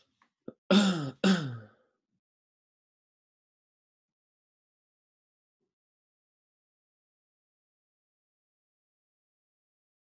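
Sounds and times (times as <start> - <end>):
person clearing throat: 0.5 - 1.7.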